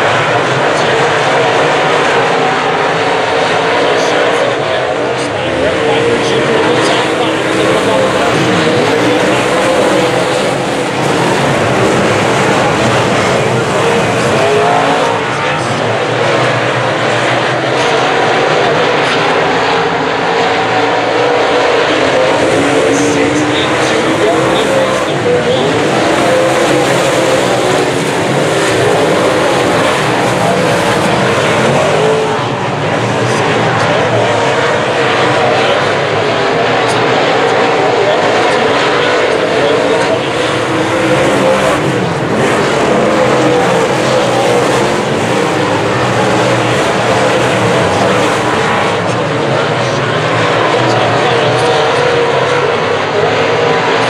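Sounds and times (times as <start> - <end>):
race car engines roaring past: 0.0 - 54.0.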